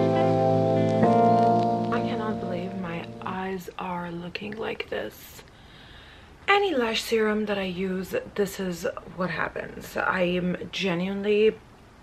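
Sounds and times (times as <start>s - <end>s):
held music chord: 0.0s - 3.5s
woman talking: 1.9s - 5.5s, 6.5s - 11.6s.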